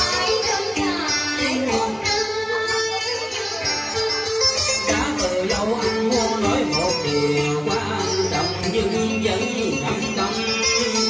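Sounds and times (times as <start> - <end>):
guitar: 0.0 - 11.0
plucked lute: 0.0 - 11.0
man singing: 4.8 - 11.0.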